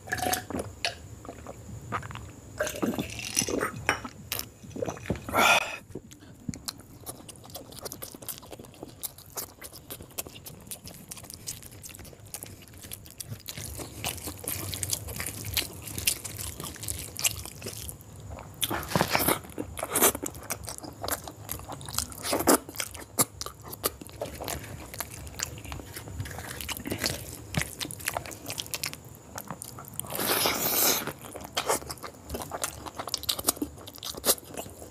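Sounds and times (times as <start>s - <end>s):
wet smacking chewing: 3.4s - 34.9s.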